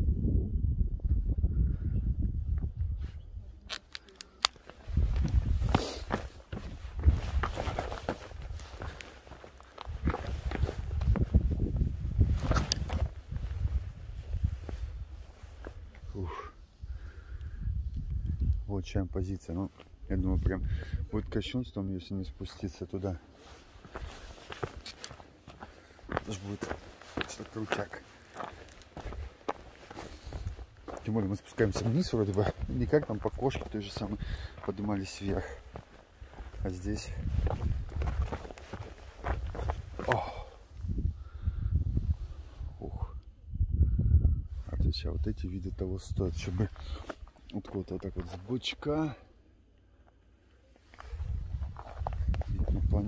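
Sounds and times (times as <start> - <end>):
footsteps on gravel: 3.7 - 13.8, 23.6 - 40.6, 51.0 - 53.0.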